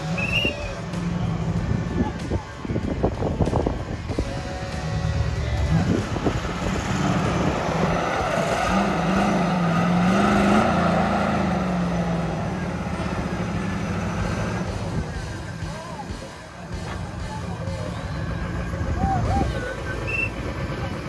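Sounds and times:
crowd voices: 0.0s - 21.0s
off-road vehicle engine revving: 0.0s - 21.0s.

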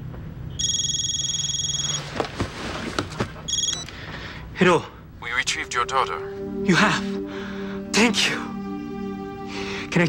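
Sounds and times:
telephone ringing: 0.6s - 2.2s, 3.5s - 3.9s.

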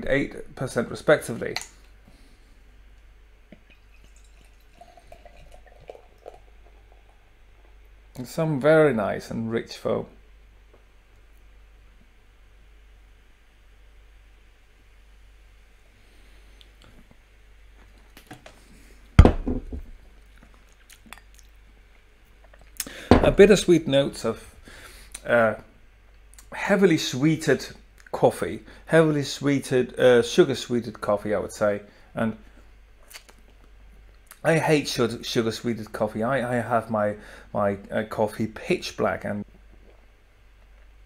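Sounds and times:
small splashes and drips: 3.5s - 6.8s
beer pouring into a glass: 3.5s - 7.3s.

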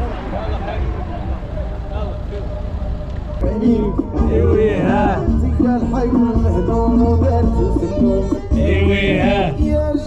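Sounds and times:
distant men chatting: 0.0s - 5.5s, 8.6s - 9.6s
steady low rumble: 0.0s - 7.4s.

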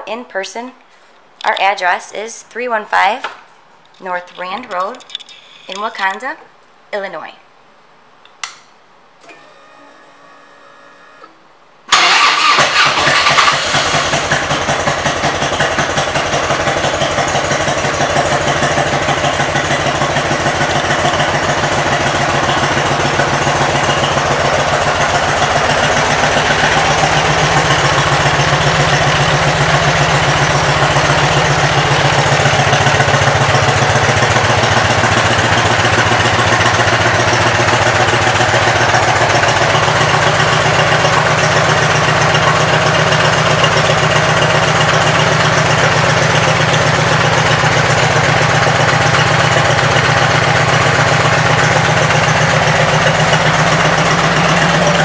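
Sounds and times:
motorcycle engine starting and idling: 9.2s - 55.0s.

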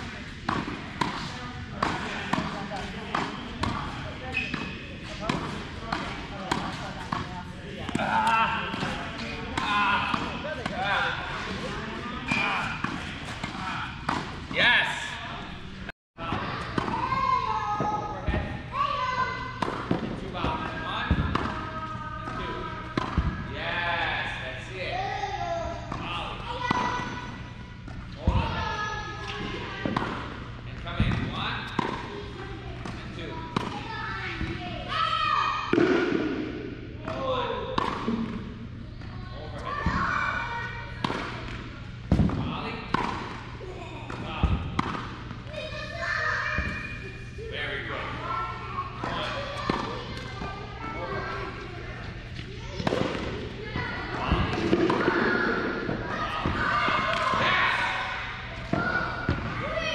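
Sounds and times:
tennis balls struck by rackets: 0.3s - 14.6s, 19.5s - 23.5s, 29.8s - 34.6s, 35.7s - 38.6s, 40.6s - 45.5s, 48.9s - 50.8s, 51.4s - 59.6s
tennis balls bouncing on hard court: 0.4s - 14.5s, 31.0s - 34.6s, 37.8s - 38.5s, 40.9s - 45.9s, 48.9s - 50.7s, 52.3s - 57.5s.

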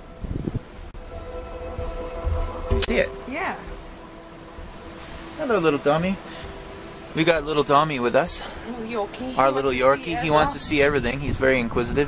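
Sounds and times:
wind rumbling on microphone: 0.0s - 12.0s
background music of held tones: 1.0s - 12.0s.

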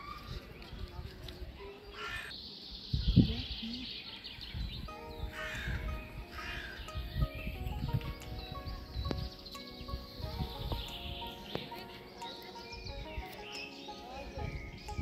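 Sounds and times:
crow-like bird cawing: 5.4s - 5.8s.

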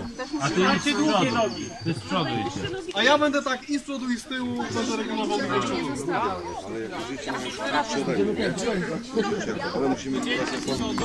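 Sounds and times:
group chatter: 0.0s - 11.0s.

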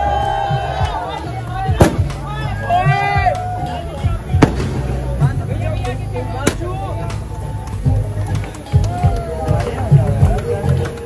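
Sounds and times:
background music: 0.0s - 11.0s
voices: 0.0s - 11.0s
confetti shooter pops: 1.8s - 2.2s, 4.4s - 5.3s, 6.4s - 6.7s.

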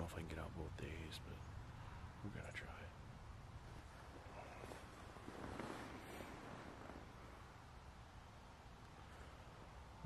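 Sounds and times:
faint low rumble: 0.0s - 10.0s
soft rustle: 3.6s - 7.6s.

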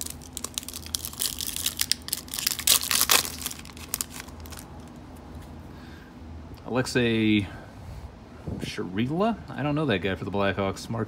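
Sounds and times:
foil wrapper crinkling: 0.0s - 5.0s.

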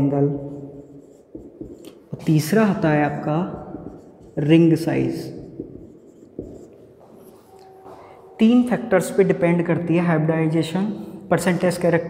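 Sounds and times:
marker writing on whiteboard: 0.0s - 8.2s.

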